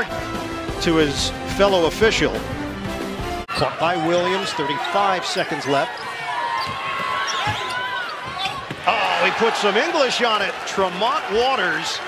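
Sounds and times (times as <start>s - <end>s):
arena crowd noise: 3.4s - 12.0s.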